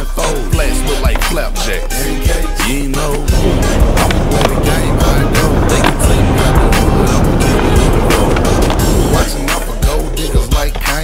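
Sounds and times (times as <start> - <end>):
hip hop music: 0.0 - 11.0
skateboard wheels rolling on concrete: 0.0 - 11.0
skateboard clacking on ground: 3.9 - 10.0.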